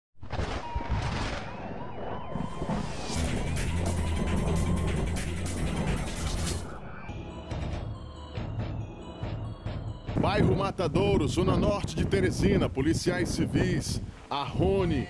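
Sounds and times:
police siren wailing: 0:00.7 - 0:07.6
dramatic music: 0:01.5 - 0:10.8
heavy bass: 0:02.4 - 0:07.7.

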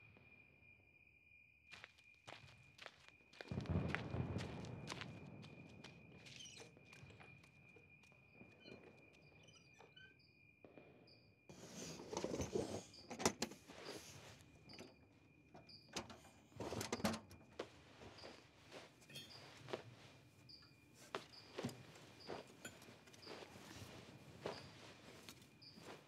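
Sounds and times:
cricket trill: 0:00.0 - 0:26.0
clothes rustling: 0:21.0 - 0:26.0.

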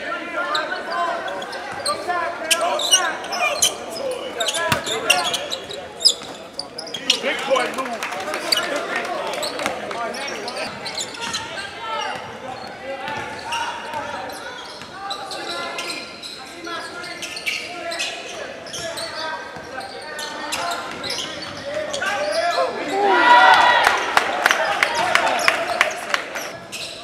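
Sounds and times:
echoing voices in gym: 0:00.0 - 0:27.0.

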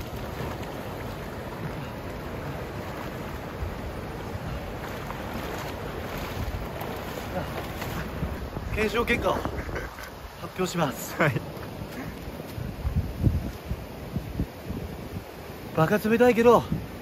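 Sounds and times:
wind on microphone: 0:00.0 - 0:10.4, 0:11.5 - 0:15.5
water splashing and sloshing: 0:00.0 - 0:15.7.

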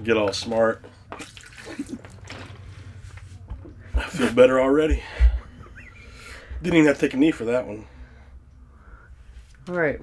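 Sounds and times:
man gulping water: 0:01.1 - 0:02.4
water sloshing in plastic bottle: 0:01.1 - 0:02.5.

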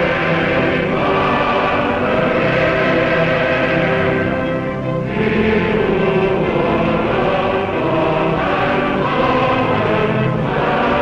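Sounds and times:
choir singing sustained chords: 0:00.0 - 0:11.0.

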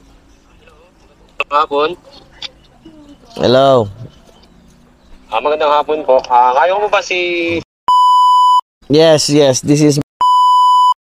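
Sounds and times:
censor bleep: 0:07.9 - 0:08.6, 0:10.2 - 0:11.0.

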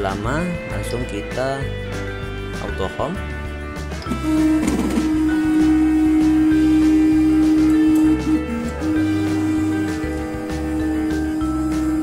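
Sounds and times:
guitar music: 0:00.6 - 0:12.0
stepper motor tone: 0:04.0 - 0:12.0.

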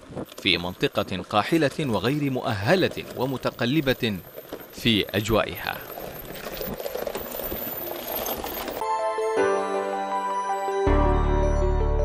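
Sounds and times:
truck engine and road noise: 0:00.0 - 0:09.4
sustained music chord: 0:08.8 - 0:12.0.

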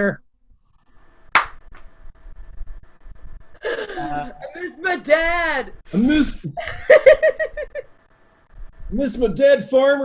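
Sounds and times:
faint steady hum: 0:00.0 - 0:10.0
sharp smack: 0:01.4 - 0:01.6.

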